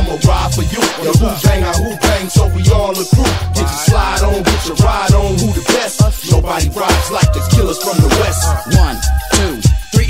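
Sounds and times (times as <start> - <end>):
hip hop track with rapping: 0.0 - 10.0.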